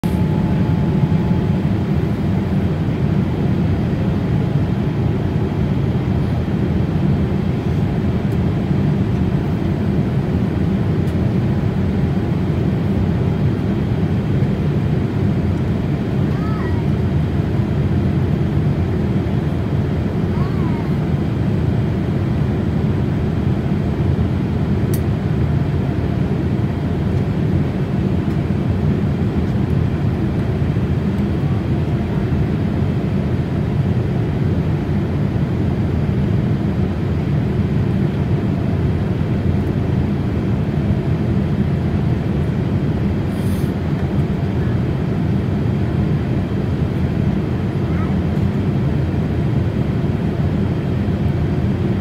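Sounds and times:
jet cabin airflow and engines: 0:00.0 - 0:52.0.

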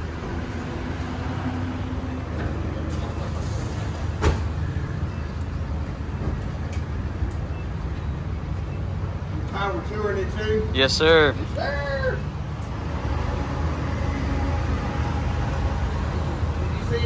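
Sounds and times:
voices: 0:09.3 - 0:12.4.

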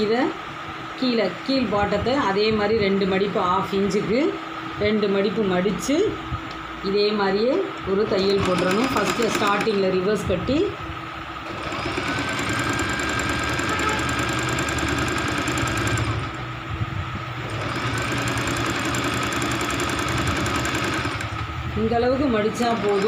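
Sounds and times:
sewing machine motor whine: 0:07.9 - 0:10.2, 0:11.3 - 0:16.5, 0:17.4 - 0:23.0.

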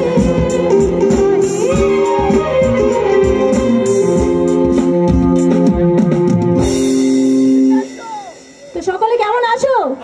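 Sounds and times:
live band with electric guitar: 0:00.0 - 0:10.0.

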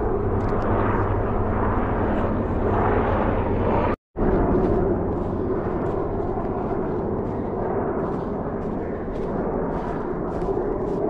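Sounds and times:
helicopter rotor and engine drone: 0:00.0 - 0:11.0.

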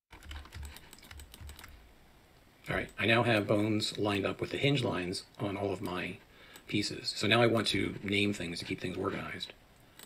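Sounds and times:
keyboard keys clicking: 0:00.1 - 0:01.7.

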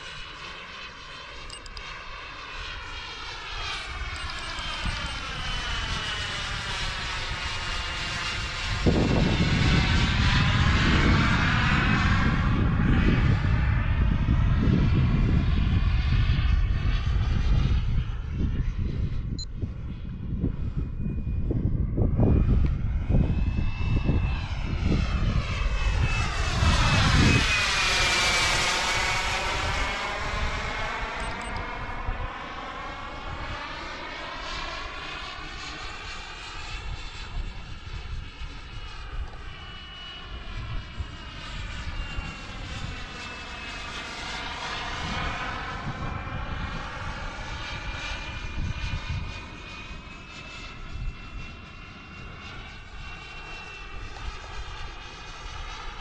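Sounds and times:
model jet turbine whine and roar: 0:00.0 - 0:56.0.

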